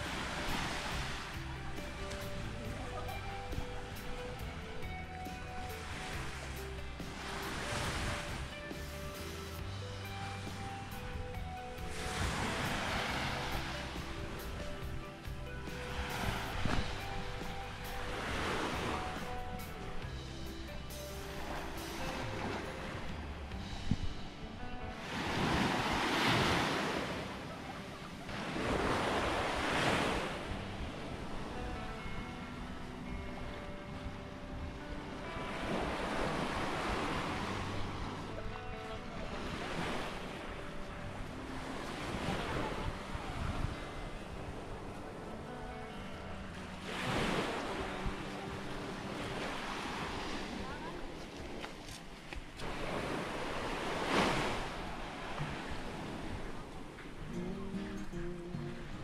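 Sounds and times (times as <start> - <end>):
small waves breaking on beach: 0.0 - 4.8, 10.2 - 14.8, 25.0 - 32.2, 46.4 - 57.4
quiet background music: 0.0 - 59.0.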